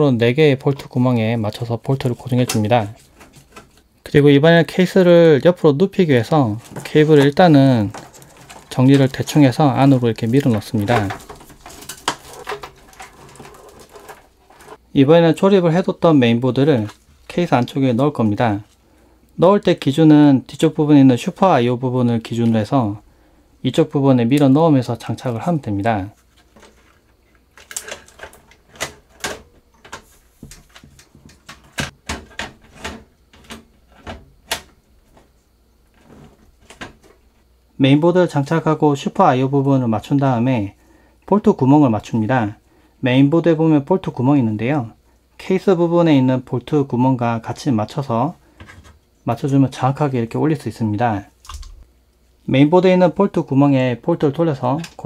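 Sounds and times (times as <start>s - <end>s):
cables clicking and rustling: 6.2s - 14.8s, 26.1s - 35.3s.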